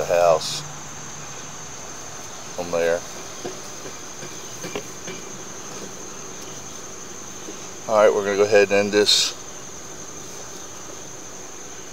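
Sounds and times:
high-pitched insect chorus: 0.0 - 11.9.

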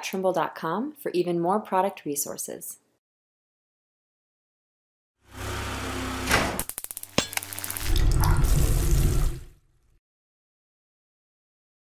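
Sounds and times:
sharp clicks: 6.6 - 8.4.

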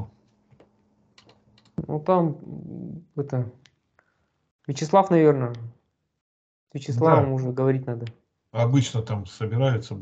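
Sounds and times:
man talking: 6.8 - 10.0.

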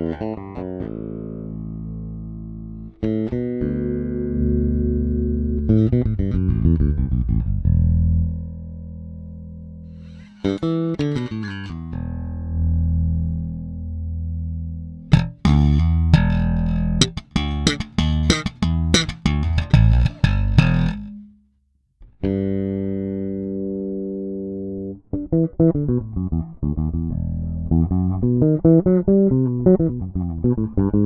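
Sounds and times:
slapped electric bass notes: 0.0 - 21.5, 22.1 - 31.0.

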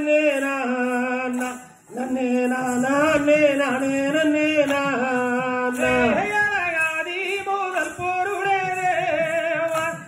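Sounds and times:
person singing chant-like folk song: 0.0 - 10.0.

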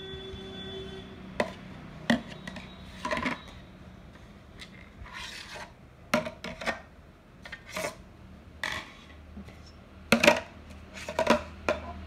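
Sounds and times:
plastic rings scraping: 4.6 - 5.8.

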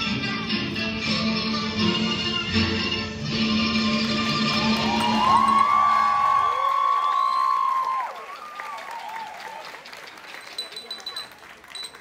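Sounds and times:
dance music: 0.0 - 5.7
audience applauding and cheering: 3.8 - 11.9
high whoops: 4.5 - 9.7.

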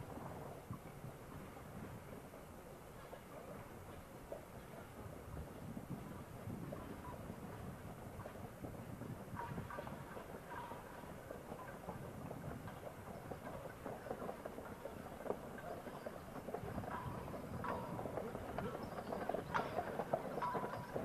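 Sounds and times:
cart rumbling: 0.0 - 21.0.

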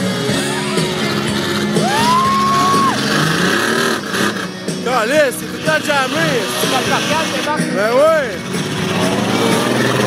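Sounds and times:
pickup truck engine revving: 0.0 - 10.0.

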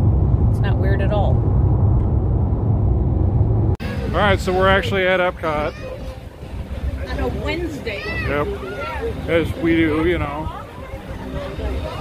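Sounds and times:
road and engine rumble in car: 0.0 - 7.9.

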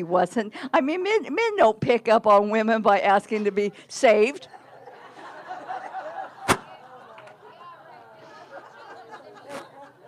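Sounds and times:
faint voices chattering: 5.8 - 10.0.

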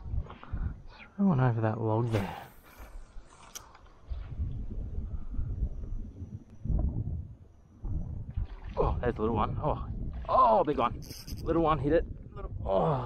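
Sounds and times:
wind rumbling on microphone: 0.0 - 1.0, 2.3 - 13.0.

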